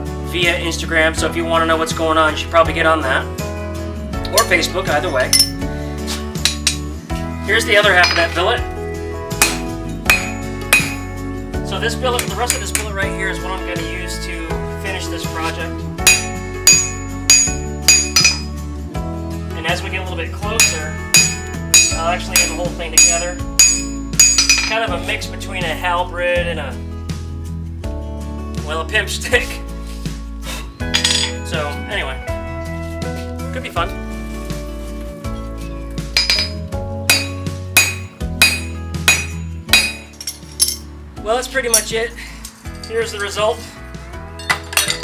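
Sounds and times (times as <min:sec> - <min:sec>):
background music: 0:00.0 - 0:45.0
hammer striking metal on anvil: 0:05.2 - 0:05.6, 0:06.4 - 0:06.9, 0:08.0 - 0:08.3, 0:09.4 - 0:11.2, 0:16.0 - 0:18.5, 0:20.6 - 0:24.8, 0:30.9 - 0:31.5, 0:36.2 - 0:40.8.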